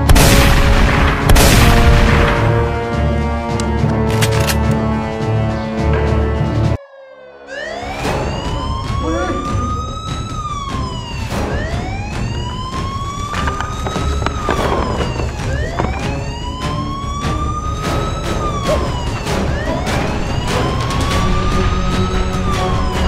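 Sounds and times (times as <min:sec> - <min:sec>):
police siren wailing: 0:07.2 - 0:23.0.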